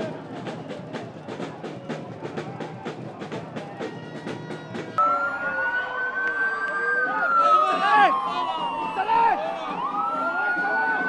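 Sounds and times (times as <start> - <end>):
street noise: 0.0 - 11.0
lower siren tone sliding down: 5.0 - 11.0
siren wailing: 5.0 - 11.0.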